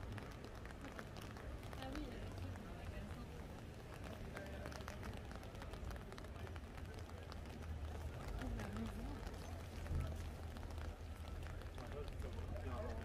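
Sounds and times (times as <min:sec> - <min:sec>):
footsteps on wet sidewalk: 0:00.0 - 0:13.0
low rumble of street noise: 0:00.0 - 0:13.0.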